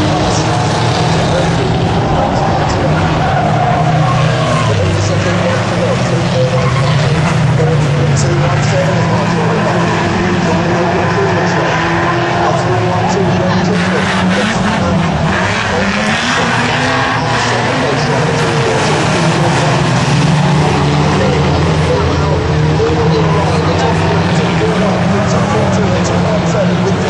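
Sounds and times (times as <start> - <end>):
racing engines running hard: 0.0 - 27.0.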